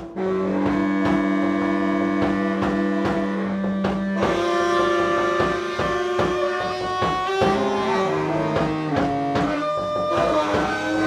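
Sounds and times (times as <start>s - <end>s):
percussion strikes: 0.0s - 11.0s
saxophones holding low notes: 0.0s - 11.0s.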